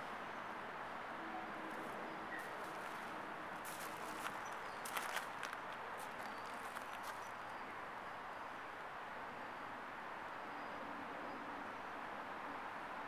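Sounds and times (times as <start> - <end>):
gravel crunching underfoot: 1.7 - 7.4.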